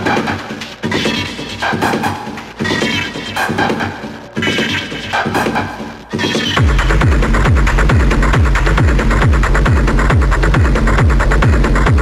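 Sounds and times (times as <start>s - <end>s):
acid techno kick drum: 0.0s - 12.0s.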